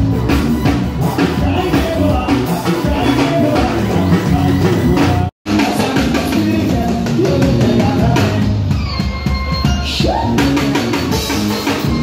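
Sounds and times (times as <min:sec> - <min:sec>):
drum kit beat: 0:00.0 - 0:12.0
keyboards: 0:00.0 - 0:12.0.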